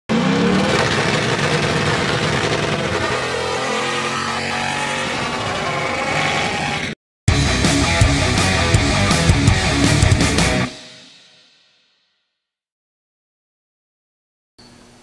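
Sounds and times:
car engine at full throttle: 0.1 - 5.5
rock music with guitar: 7.3 - 11.2.

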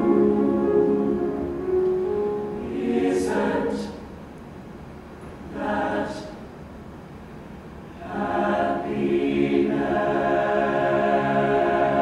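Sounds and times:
choir singing: 0.0 - 4.1, 5.5 - 6.4, 8.0 - 12.0.

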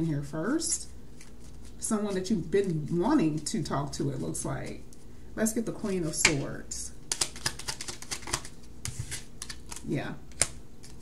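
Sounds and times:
playing cards being leafed through: 1.1 - 3.4, 7.1 - 11.0.

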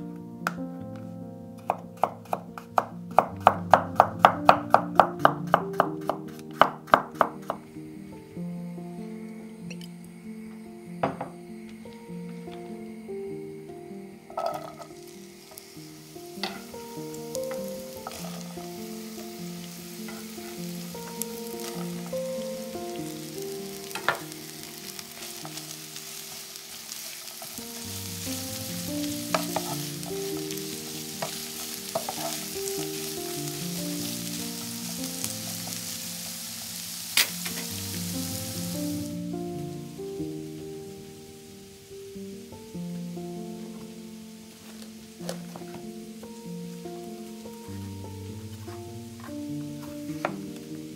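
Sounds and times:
vegetables sizzling in oil: 1.7 - 9.0, 14.2 - 50.9.

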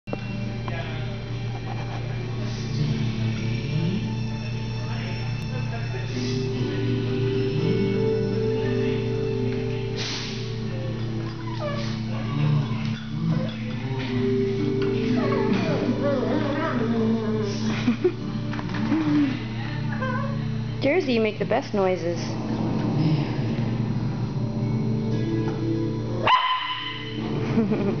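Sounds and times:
background music: 0.1 - 28.0
dog whining: 11.2 - 17.8, 19.0 - 20.6.

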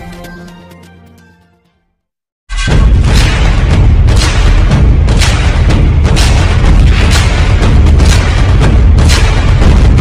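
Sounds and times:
booming bass: 2.5 - 10.0
sharp hits and whooshes: 2.5 - 10.0.

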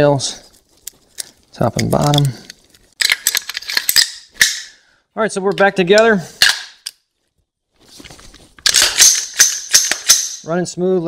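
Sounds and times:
rifle bolt metallic clacks: 8.6 - 10.4.

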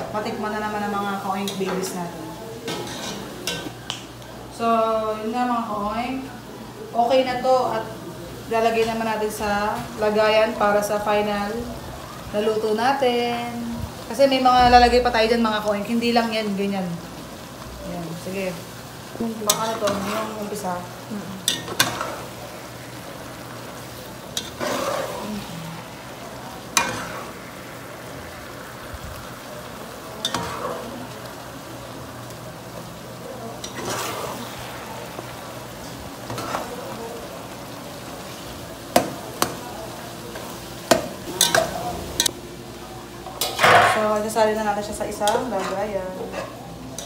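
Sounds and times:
steady sizzle: 0.0 - 47.0
metal spatula scraping pot: 24.4 - 25.4, 33.6 - 34.6, 45.2 - 47.0.

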